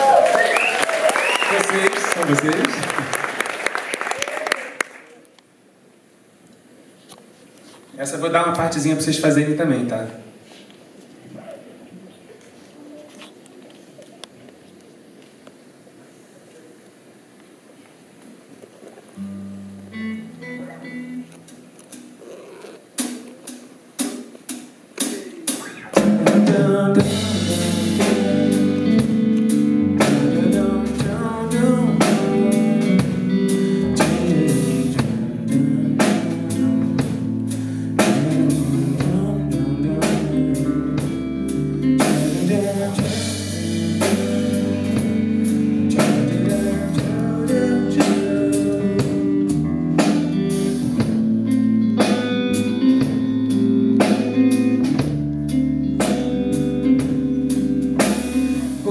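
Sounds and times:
live band playing: 19.2 - 58.9
man singing: 25.0 - 49.7, 58.6 - 58.9.

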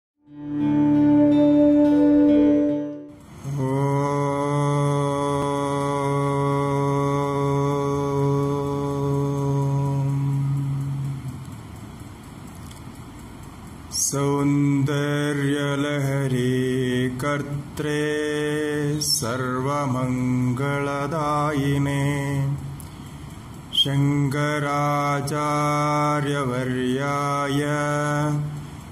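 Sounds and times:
man chanting into a microphone: 3.4 - 11.4, 13.9 - 22.8, 23.7 - 28.9.

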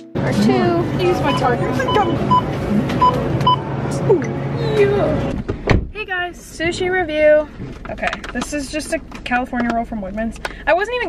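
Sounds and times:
background music: 0.0 - 2.4
barcode scanner beeping: 1.2 - 3.7.

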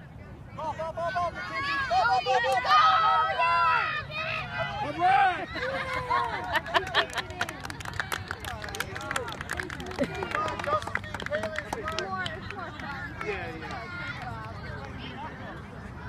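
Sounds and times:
spectators talking and calling out: 0.0 - 16.0.

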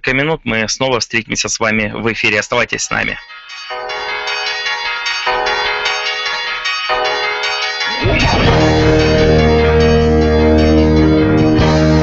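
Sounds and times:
bell-like chime chords: 3.0 - 12.0.

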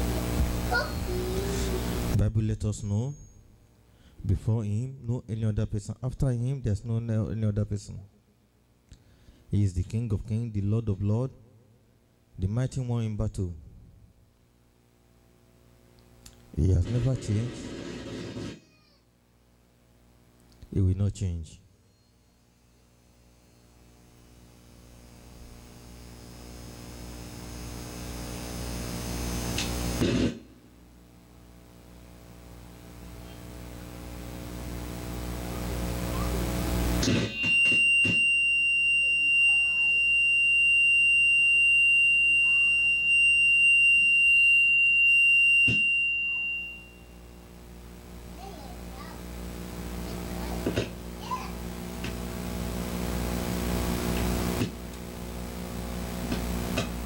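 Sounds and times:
low hum: 22.0 - 48.4
high-pitched tone: 37.0 - 47.2.

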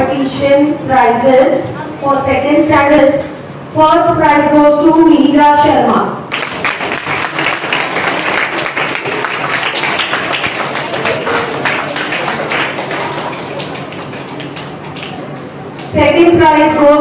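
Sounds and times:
audience clapping: 6.3 - 15.9.

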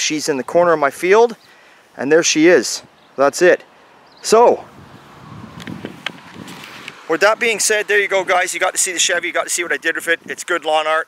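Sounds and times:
camera handling rustling: 5.6 - 7.0.

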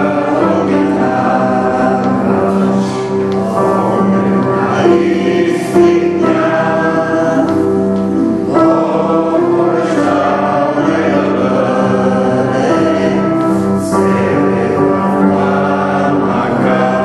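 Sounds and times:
choir singing held chords: 0.0 - 17.0.

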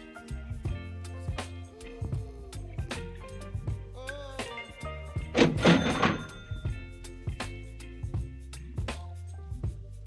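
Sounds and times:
background music with steady beat: 0.0 - 10.0
cash register: 5.4 - 6.7.

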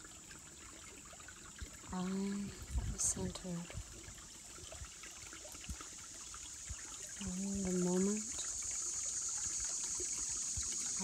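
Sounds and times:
creek trickling over rocks: 0.0 - 11.0.

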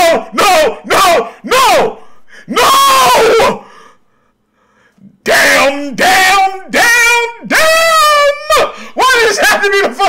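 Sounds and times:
man yelling excitedly: 0.0 - 3.6, 5.2 - 10.0.

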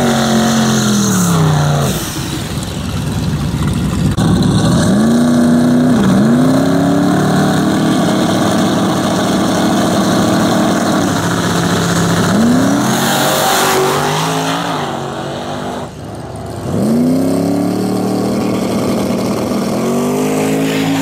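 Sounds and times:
drag car engines revving: 0.0 - 21.0.

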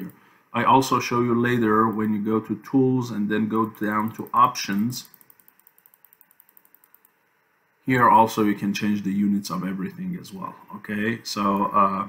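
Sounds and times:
mouse scroll wheel ticking: 3.5 - 7.2.

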